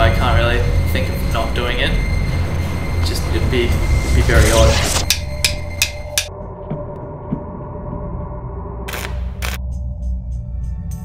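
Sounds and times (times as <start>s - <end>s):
low ringing drone: 0.0s - 8.9s.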